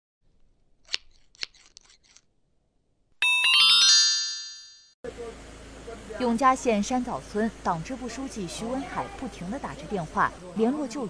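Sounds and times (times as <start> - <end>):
bright chiming chord: 3.2 - 4.9.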